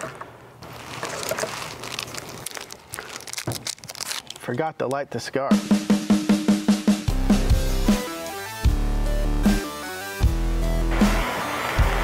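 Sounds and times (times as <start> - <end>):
rustling and crinkling: 0.0 - 4.6.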